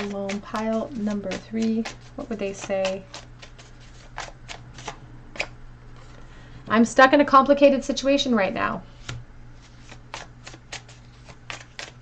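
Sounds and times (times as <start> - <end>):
cards shuffling: 0.0 - 6.2, 9.0 - 12.0.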